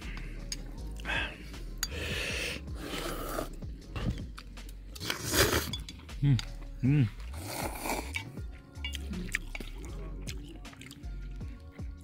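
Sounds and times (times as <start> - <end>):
person slurping noodles: 2.0 - 3.6, 5.0 - 5.7, 7.3 - 8.2
chewing: 2.8 - 12.0.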